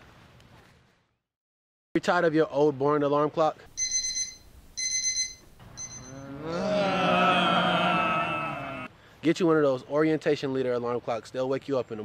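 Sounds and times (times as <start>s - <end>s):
electronic alarm clock beeping: 3.8s - 6.2s
group of voices calling: 6.1s - 8.9s.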